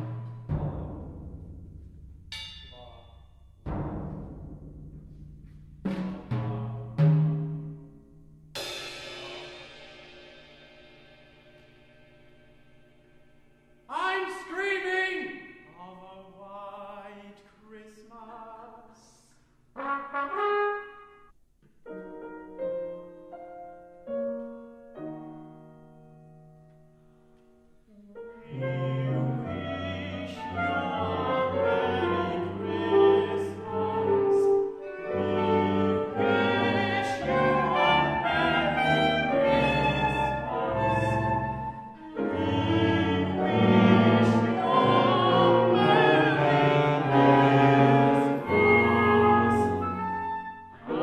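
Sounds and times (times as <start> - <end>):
wind and brass ensemble chords: 19.8 - 21.3, 27.9 - 51.0.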